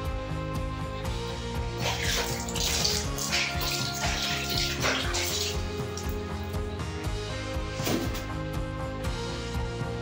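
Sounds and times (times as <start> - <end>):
background music: 0.0 - 10.0
water splashing on tiled floor: 1.8 - 6.5.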